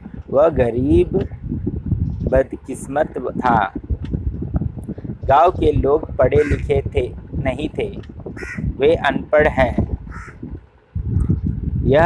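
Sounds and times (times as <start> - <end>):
low rumble: 0.0 - 12.0
crow cawing: 6.4 - 6.7, 8.4 - 8.7, 10.1 - 10.4.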